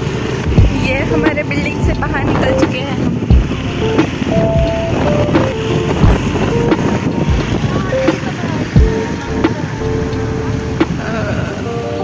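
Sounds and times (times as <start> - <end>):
background music: 0.0 - 12.0
wind buffeting microphone: 0.0 - 12.0
low thumps: 0.4 - 11.3.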